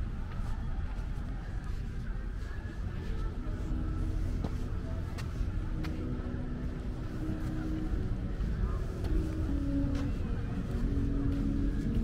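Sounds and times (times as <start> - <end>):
low rumble of road traffic: 0.0 - 12.0.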